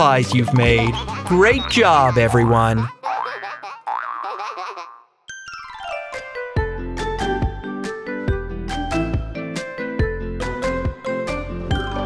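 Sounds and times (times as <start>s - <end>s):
cartoon boing sound effects: 3.1s - 5.1s.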